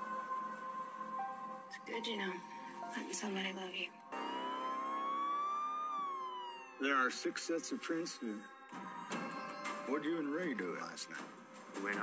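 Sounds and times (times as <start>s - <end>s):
siren wail: 4.0s - 11.3s.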